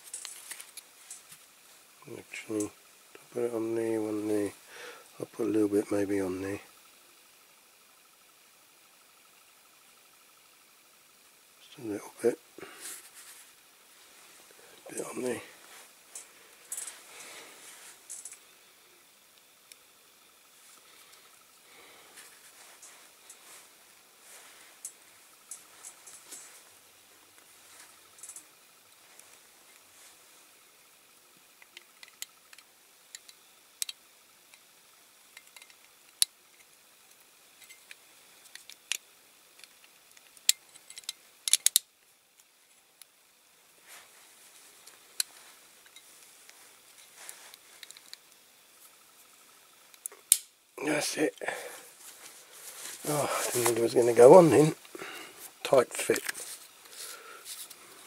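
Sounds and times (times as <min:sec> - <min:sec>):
toy parts clicking: 0:37.6 - 0:41.9.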